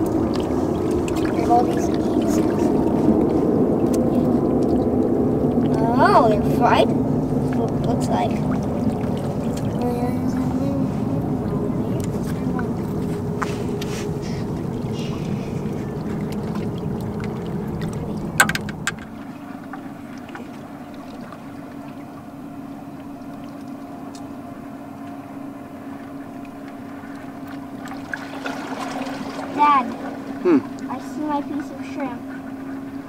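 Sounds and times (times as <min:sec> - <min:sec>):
low hum: 0:00.0 - 0:33.0
outdoor rumbling: 0:00.0 - 0:33.0.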